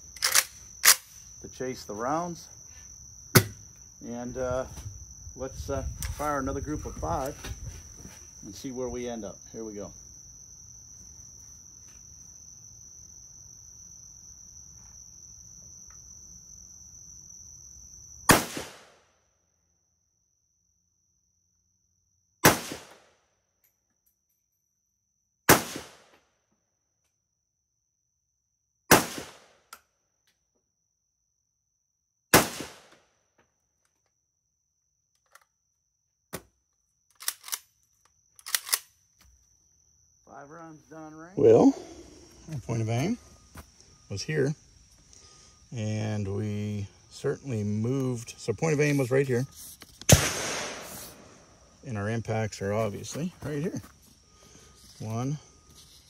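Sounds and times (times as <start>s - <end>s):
high insect drone: 0.0s - 26.0s, 26.7s - 56.0s
rifle shots with echo: 18.3s - 19.0s, 22.4s - 23.0s, 25.5s - 26.1s, 28.9s - 29.5s, 32.4s - 32.9s, 50.1s - 51.3s.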